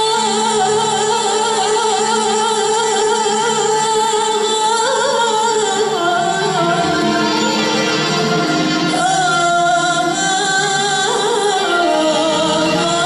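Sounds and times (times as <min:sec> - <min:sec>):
bowed strings: 0:00.0 - 0:13.0
oud: 0:00.0 - 0:13.0
woman singing: 0:00.0 - 0:13.0.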